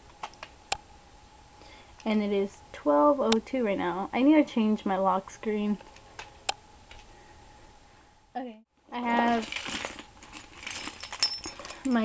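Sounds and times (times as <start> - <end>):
keys jangling: 10.3 - 12.0.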